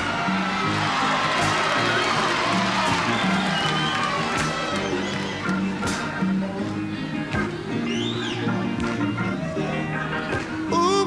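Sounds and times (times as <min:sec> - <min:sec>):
audience cheering: 0:00.0 - 0:06.1
live soul band playing: 0:00.8 - 0:11.0.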